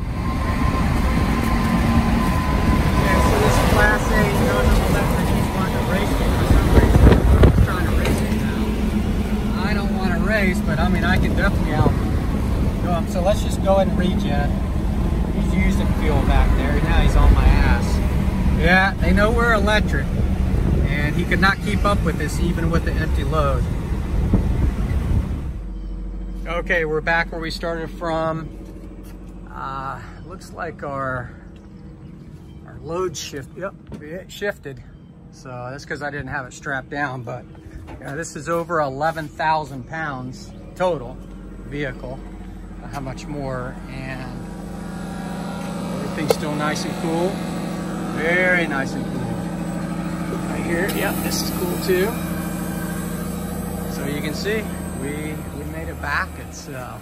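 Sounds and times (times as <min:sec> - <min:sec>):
road and wind noise in car: 0:00.0 - 0:29.5
steady low hum: 0:00.0 - 0:57.0.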